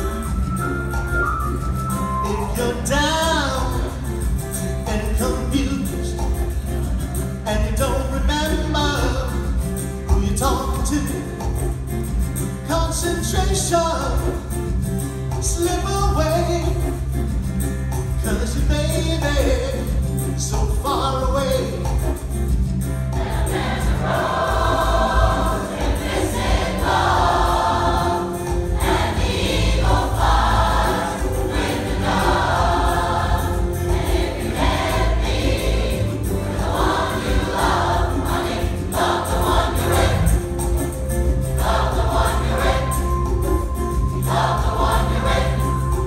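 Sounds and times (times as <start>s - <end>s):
instrumental backing: 0.0s - 46.0s
steady bass line: 0.0s - 46.0s
large choir singing: 23.1s - 46.0s.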